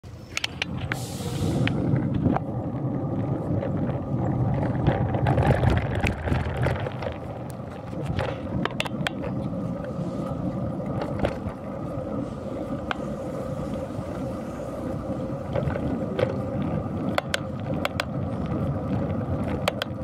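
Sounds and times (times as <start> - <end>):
road and wind rumble: 0.0 - 20.0
bicycle clicks and rattles: 0.2 - 1.0, 1.6 - 20.0.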